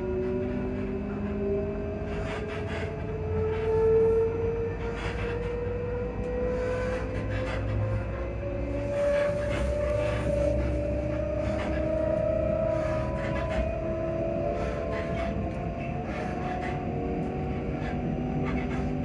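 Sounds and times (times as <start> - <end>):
train traction motor whine: 0.0 - 19.0.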